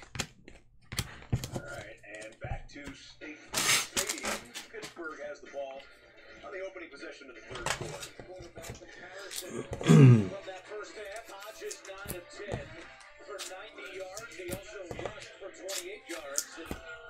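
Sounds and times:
faint music: 1.0 - 17.0
faint talk: 6.4 - 11.4.

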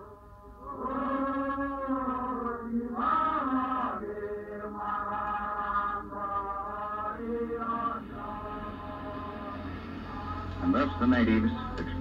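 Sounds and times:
group singing chant-like notes: 0.0 - 12.0.

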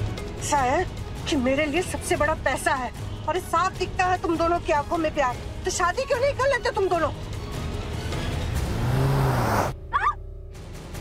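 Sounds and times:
car stopping suddenly: 8.0 - 11.0
short cry: 9.9 - 10.2.

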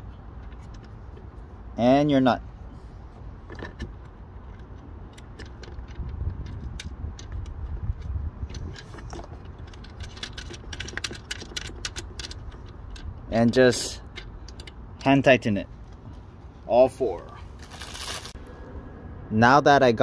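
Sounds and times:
metal washers and nuts clinking: 3.4 - 15.3
low rumble: 18.2 - 19.5.

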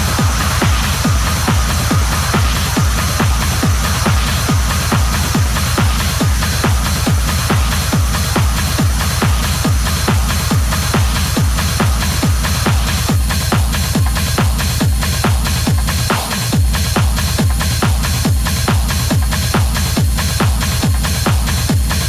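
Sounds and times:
hi-hat percussion: 0.0 - 22.0
steady kick drum beat: 0.0 - 22.0
techno dj mix: 0.0 - 22.0.

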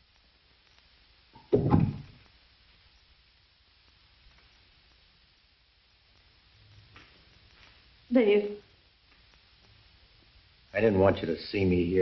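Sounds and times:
film soundtrack hiss: 0.0 - 12.0.

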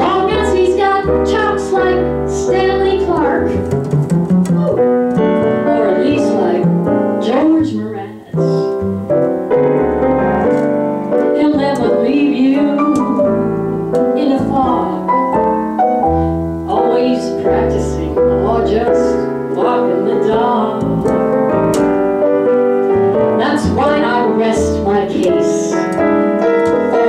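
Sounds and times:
piano: 0.0 - 27.0
upright bass low notes: 0.0 - 27.0.

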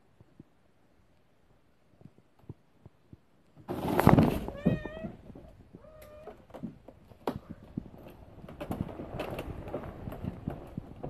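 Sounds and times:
loud scuffling crash: 3.6 - 5.0
cat meowing: 4.5 - 6.4.

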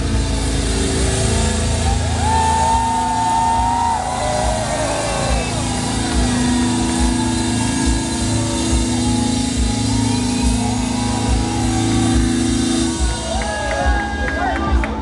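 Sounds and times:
high held guitar note bending: 0.0 - 14.3
metal band playing live: 0.0 - 15.0.

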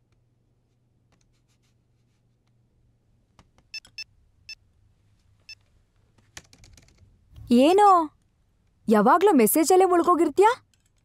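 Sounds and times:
laptop keys and trackpad clicking: 6.2 - 7.0.

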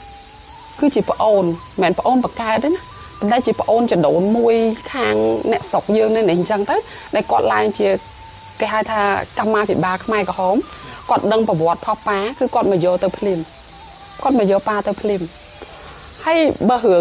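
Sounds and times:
high-pitched hiss: 0.0 - 17.0
person talking: 2.6 - 8.0.

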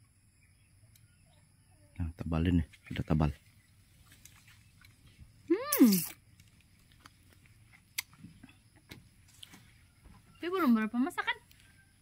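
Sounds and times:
fruit shell cracking: 5.7 - 8.6.

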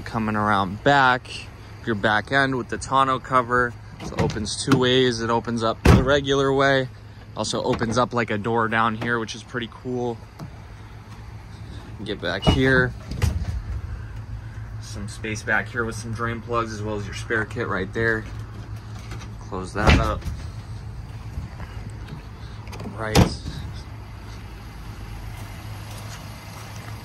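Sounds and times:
car engine idling: 0.0 - 27.0
steady low hum: 0.0 - 27.0.

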